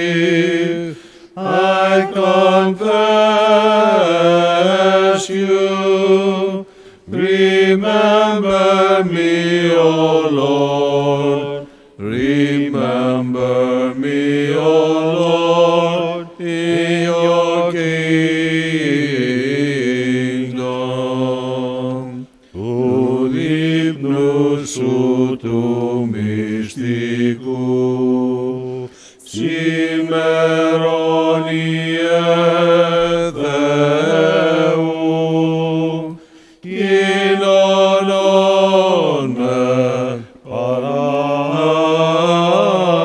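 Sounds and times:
chanted melodic vocal line: 0.0 - 43.0.

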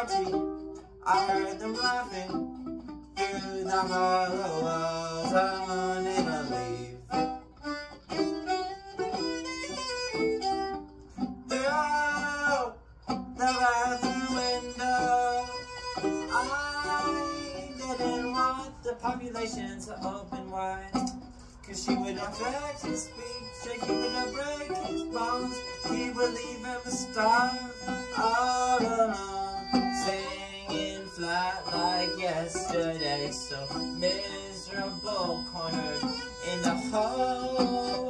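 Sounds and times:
bowed violin: 0.0 - 38.0.

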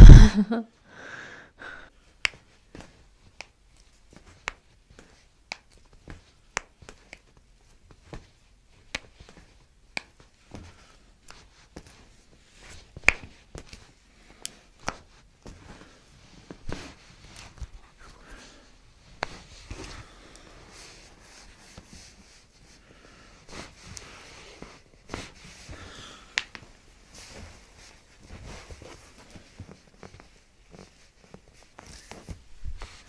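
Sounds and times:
soft handling taps and rustles: 2.1 - 33.0.

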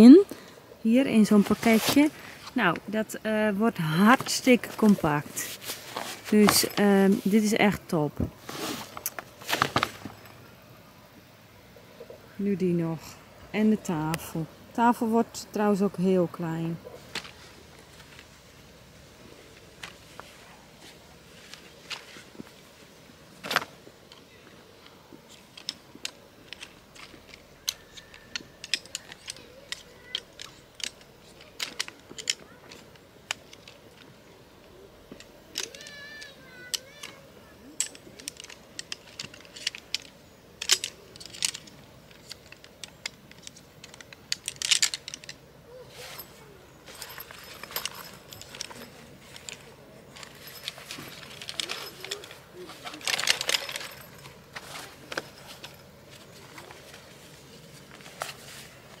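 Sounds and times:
fabric rustling: 1.2 - 2.9, 3.8 - 10.4, 16.8 - 23.8, 44.5 - 59.0
metal frame clicking and rattling: 23.4 - 59.0.

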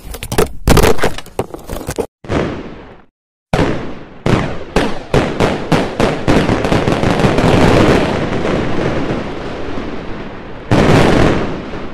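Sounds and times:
fireworks banging and crackling: 1.8 - 11.9.

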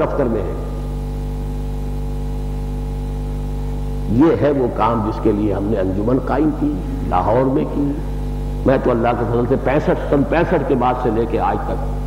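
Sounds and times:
buzzy electrical hum: 0.0 - 12.0.

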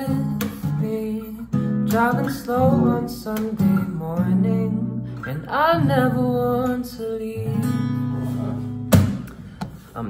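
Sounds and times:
acoustic guitar chord ringing: 0.0 - 9.5
sharp thump: 8.9 - 9.8.

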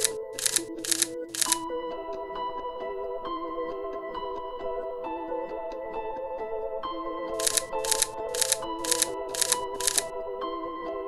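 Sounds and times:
camera shutter firing: 0.0 - 1.6, 7.4 - 10.0
background music: 0.0 - 11.0.

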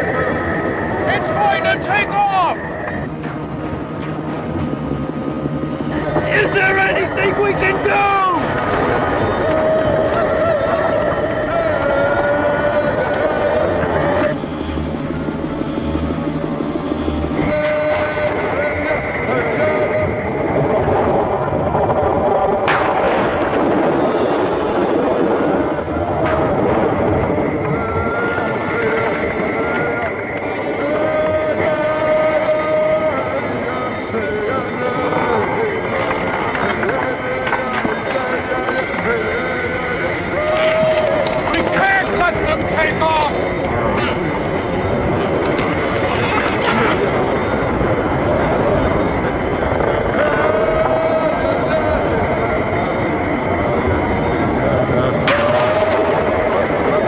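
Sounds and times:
craft taking off rumbling: 0.0 - 57.0.

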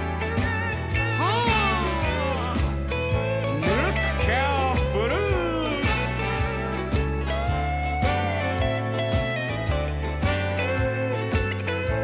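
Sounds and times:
western swing band playing: 0.0 - 12.0.

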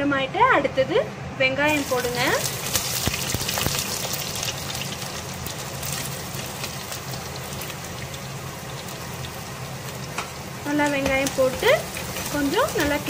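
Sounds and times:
onions sizzling in hot oil: 1.7 - 13.0.

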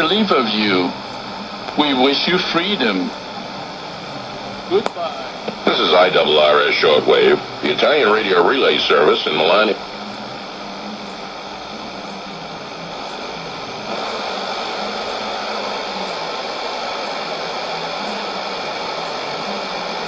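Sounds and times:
shortwave radio static: 0.0 - 20.0.

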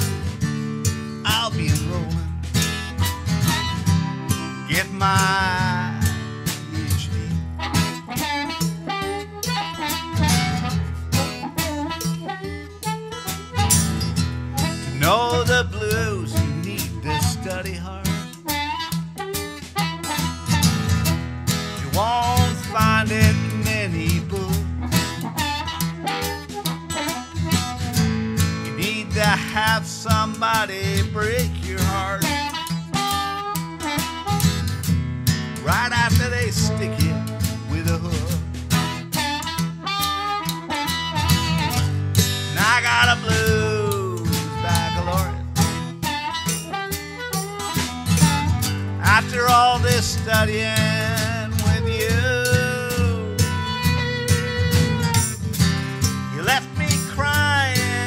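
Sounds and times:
acoustic guitar strummed: 0.0 - 58.0
harmonica wailing: 0.0 - 58.0.

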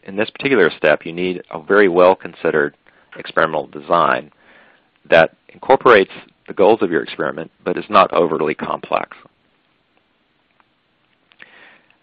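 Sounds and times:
man's faint in-breath: 4.4 - 4.9, 11.4 - 12.0.

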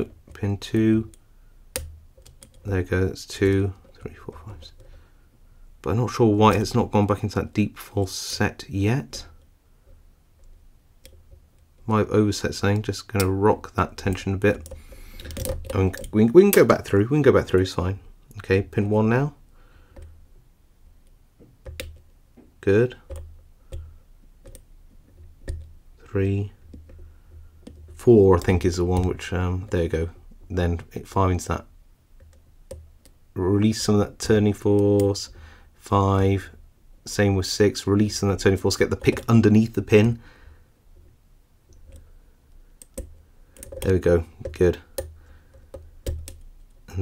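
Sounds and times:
lock pick clicks: 14.0 - 16.7.

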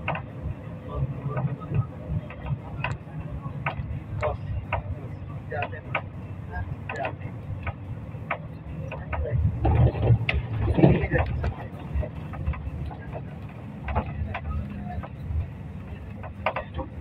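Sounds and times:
low traffic rumble: 0.0 - 17.0
muffled voices: 0.0 - 17.0.

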